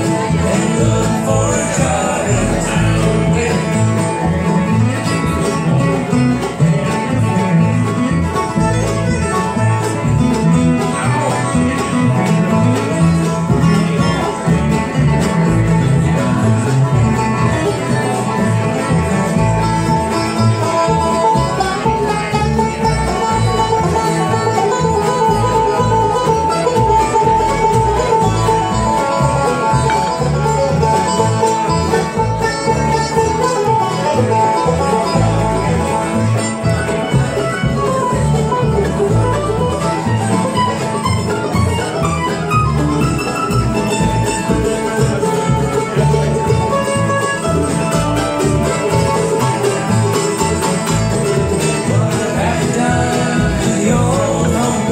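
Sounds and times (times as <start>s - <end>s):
banjo: 0.0s - 54.9s
bluegrass band playing: 0.0s - 54.9s.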